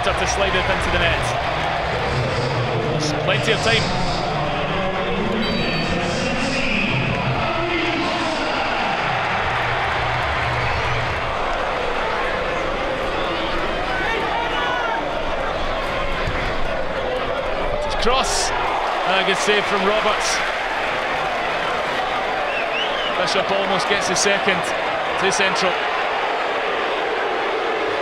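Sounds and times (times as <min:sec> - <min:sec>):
crowd voices din: 0:00.0 - 0:28.0.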